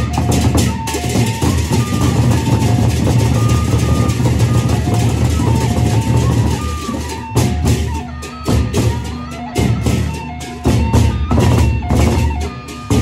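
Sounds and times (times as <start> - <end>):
barrel drums: 0.0 - 13.0
cymbals: 0.0 - 13.0.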